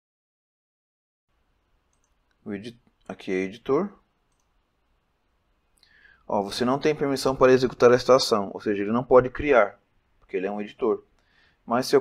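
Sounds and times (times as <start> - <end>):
computer mouse click: 1.9 - 2.4, 4.3 - 4.6.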